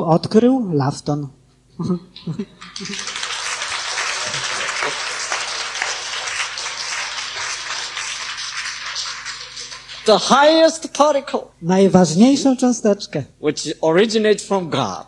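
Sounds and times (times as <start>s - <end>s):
audience applauding: 2.4s - 10.6s.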